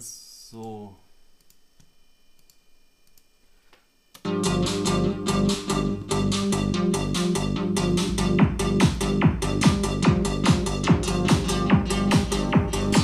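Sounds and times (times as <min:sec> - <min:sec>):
synthesized psytrance loop: 0:04.2 - 0:13.0.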